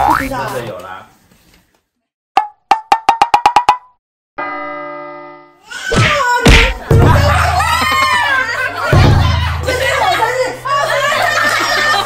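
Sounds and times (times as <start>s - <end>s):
held ringing chord: 4.4s - 5.6s.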